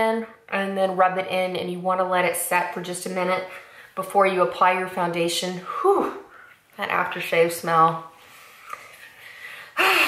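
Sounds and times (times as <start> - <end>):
woman breathing softly: 8.2 - 10.0.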